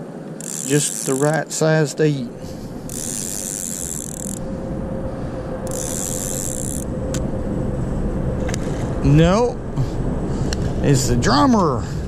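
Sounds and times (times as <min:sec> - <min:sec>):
faint hum: 0:00.0 - 0:12.0
fishing reel being cranked: 0:00.4 - 0:01.4, 0:02.9 - 0:04.4, 0:05.6 - 0:06.9
low rumble: 0:02.2 - 0:12.0.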